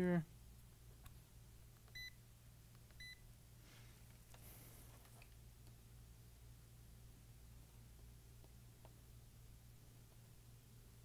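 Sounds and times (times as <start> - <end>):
faint rustle of probe handling: 3.6 - 5.4.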